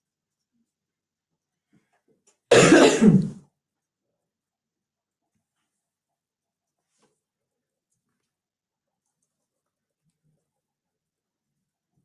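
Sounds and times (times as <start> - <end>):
person clearing throat: 2.5 - 3.4.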